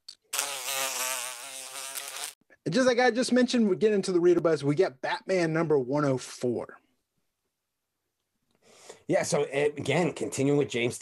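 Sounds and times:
insect buzz: 0:00.3 - 0:02.4.

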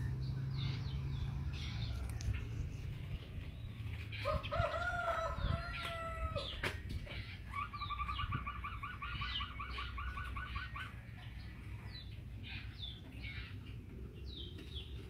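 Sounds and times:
rooster crowing: 0:04.2 - 0:06.5.

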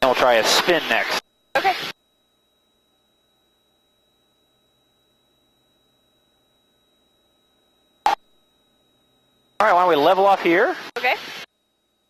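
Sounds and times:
faint hum: 0:00.0 - 0:12.0
faint steady high tone: 0:00.0 - 0:12.0.

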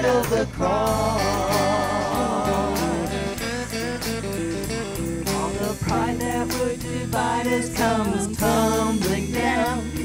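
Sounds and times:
people singing: 0:00.0 - 0:03.8, 0:05.2 - 0:10.0
band playing instrumental: 0:00.0 - 0:10.0
electric guitar melody: 0:00.0 - 0:10.0.

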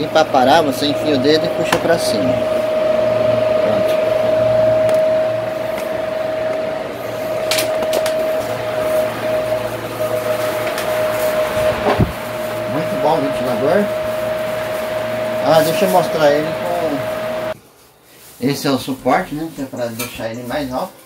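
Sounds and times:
electric fan running: 0:00.0 - 0:20.7
clicks and knocks of handled fan: 0:07.5 - 0:08.2.

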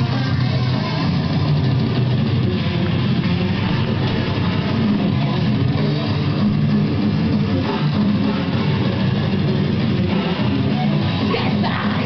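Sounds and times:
acoustic guitar playing metal riff: 0:01.9 - 0:11.3.

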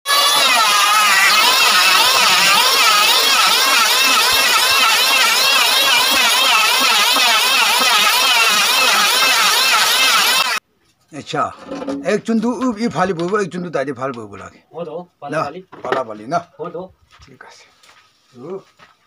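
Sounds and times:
electric planer whining: 0:00.1 - 0:10.6.

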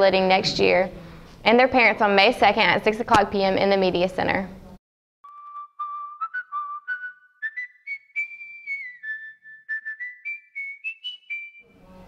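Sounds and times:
person whistling a tune: 0:05.3 - 0:11.8.

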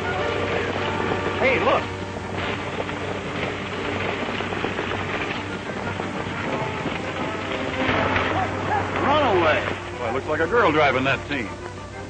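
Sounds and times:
galloping hooves clattering: 0:00.0 - 0:12.0
orchestral chase music: 0:00.0 - 0:12.0
steady low hum: 0:00.0 - 0:12.0.

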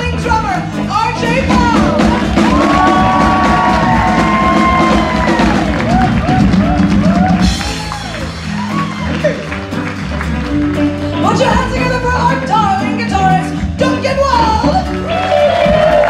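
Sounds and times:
live band music: 0:00.0 - 0:16.0.

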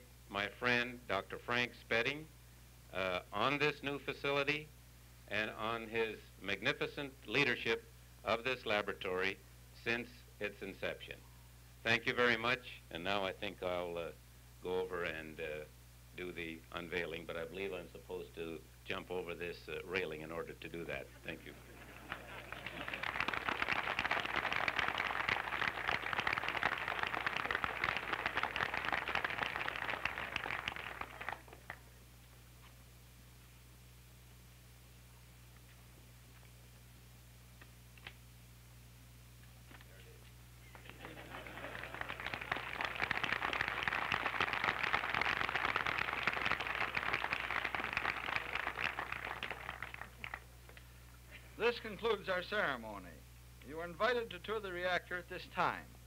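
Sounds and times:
audience applauding: 0:21.5 - 0:31.9, 0:40.7 - 0:50.6.

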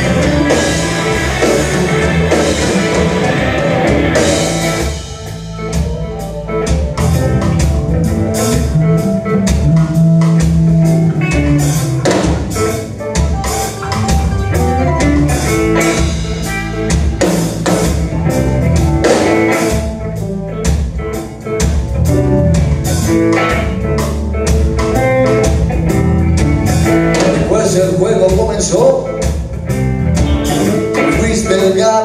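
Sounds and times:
drum kit: 0:00.0 - 0:32.0
electric bass: 0:00.0 - 0:32.0
electric guitar: 0:00.0 - 0:32.0
keyboard: 0:00.0 - 0:32.0.

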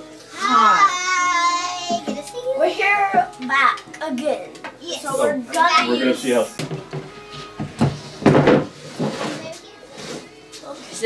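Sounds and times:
wooden knocks and clatter: 0:06.6 - 0:09.4.

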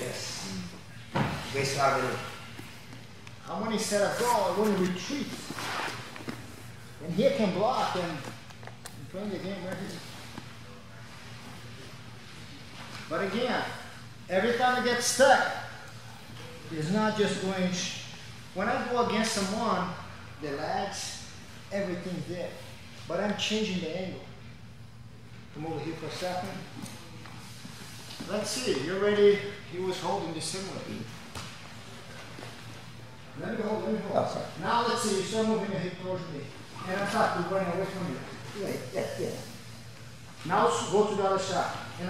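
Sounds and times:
cloth rustling: 0:03.8 - 0:06.8.

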